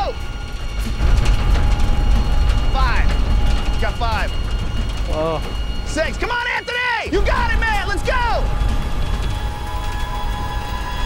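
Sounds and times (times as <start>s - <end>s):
motorized moving wall rumbling: 0.2s - 6.4s, 7.2s - 11.0s.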